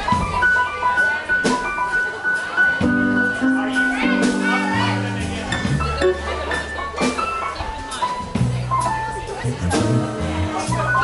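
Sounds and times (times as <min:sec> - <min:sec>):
live jazz band playing: 0:00.0 - 0:11.0.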